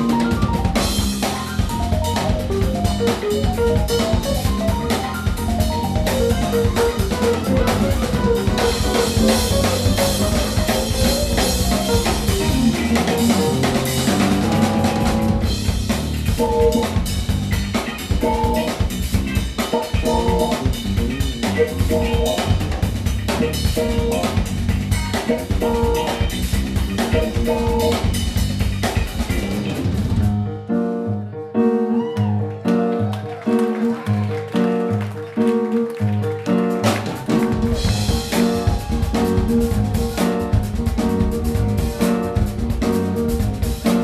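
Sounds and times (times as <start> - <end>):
electric guitar riff: 0.0 - 15.7
drum kit: 0.0 - 30.5, 32.0 - 44.0
electric bass: 0.0 - 31.3, 32.2 - 44.0.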